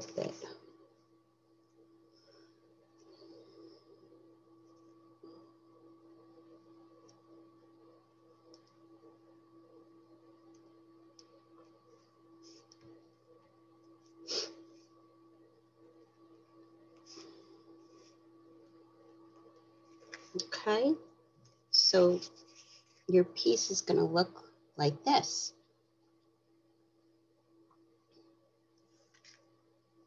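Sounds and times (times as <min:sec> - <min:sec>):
low hum: 0:00.0 - 0:28.9.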